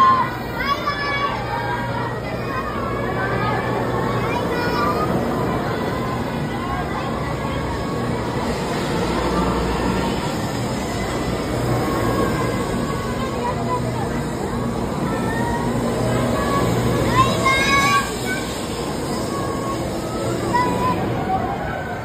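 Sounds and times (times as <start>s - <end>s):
platform chatter: 0.0s - 22.0s
train hum and rumble: 0.0s - 22.0s.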